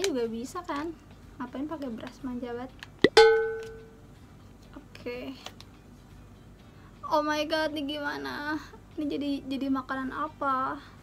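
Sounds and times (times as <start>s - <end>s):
bright plucked note: 3.0s - 4.0s.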